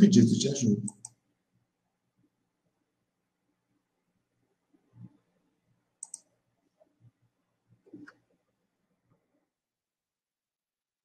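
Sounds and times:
faint sharp clicks: 0:06.0 - 0:06.3.

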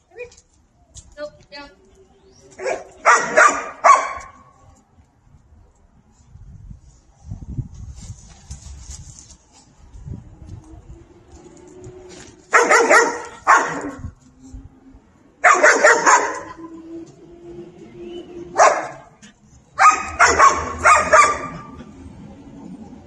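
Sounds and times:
dog barking: 0:02.6 - 0:04.4, 0:12.5 - 0:14.0, 0:15.4 - 0:16.6, 0:18.6 - 0:19.1, 0:19.8 - 0:21.8.

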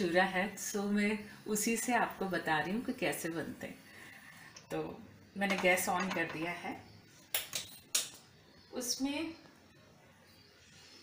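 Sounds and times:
kitchen utensils clattering: 0:05.4 - 0:06.6.

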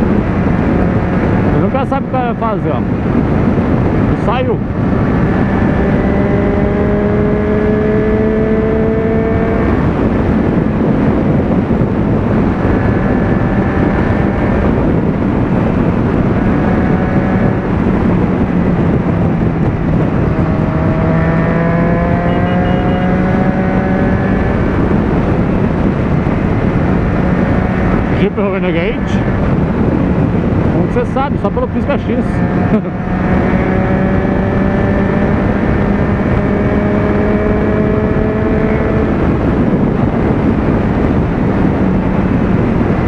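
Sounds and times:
motorcycle engine cruising: 0:00.0 - 0:43.0
wind noise on microphone: 0:00.0 - 0:43.0.

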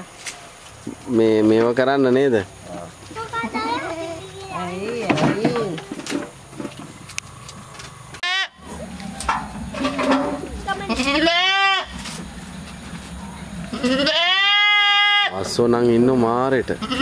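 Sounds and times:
goats bleating: 0:10.8 - 0:12.0, 0:13.6 - 0:15.4, 0:16.8 - 0:17.0.

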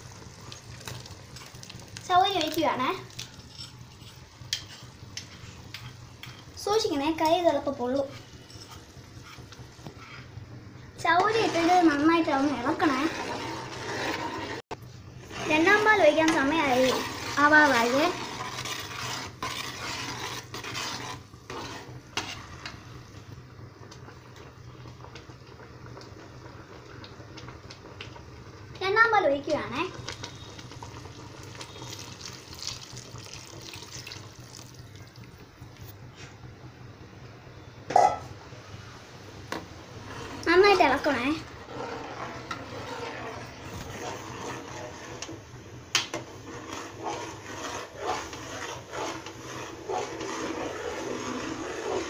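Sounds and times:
metal spoon stirring in a pot: 0:00.4 - 0:10.3, 0:11.0 - 0:22.9, 0:29.9 - 0:35.4, 0:40.0 - 0:45.4, 0:46.0 - 0:52.0.

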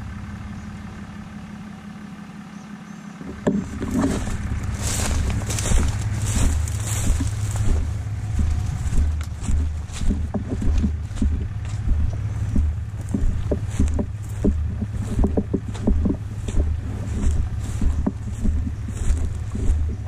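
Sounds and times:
vehicle low rumble: 0:00.0 - 0:20.0
rattles and clicks: 0:03.2 - 0:20.0
wind buffeting microphone: 0:03.8 - 0:20.0.

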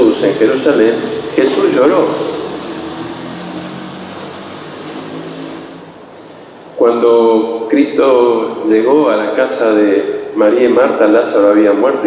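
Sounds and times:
low mechanical hum: 0:00.0 - 0:11.8.

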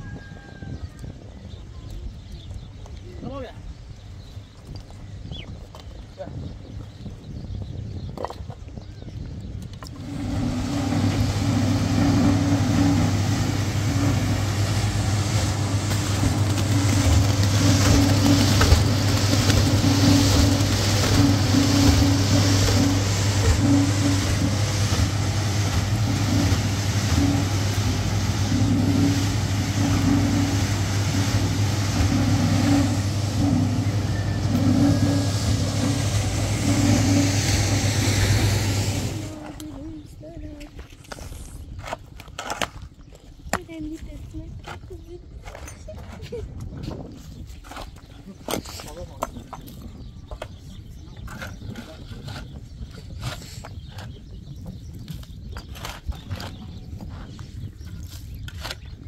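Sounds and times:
concrete mixer running: 0:09.6 - 0:59.0.

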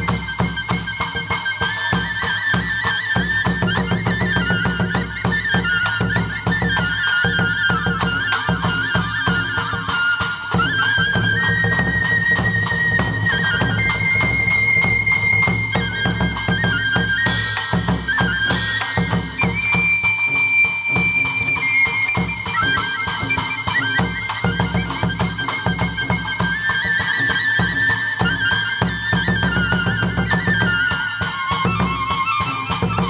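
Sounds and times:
high flute melody: 0:00.0 - 0:33.0
steady drum beat: 0:07.8 - 0:33.0.

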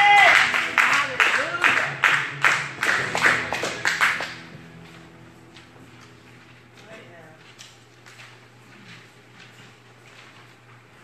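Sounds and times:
congregation clapping in rhythm: 0:00.0 - 0:04.8
music: 0:00.0 - 0:07.3.

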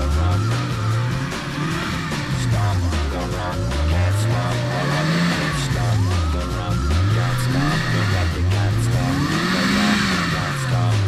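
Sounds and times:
off-road engine revving: 0:00.0 - 0:11.0
rock music: 0:00.0 - 0:11.0.

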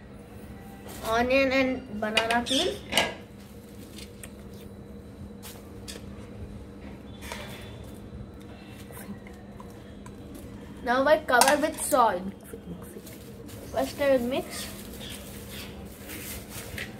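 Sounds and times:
steady low hum: 0:00.0 - 0:16.9.

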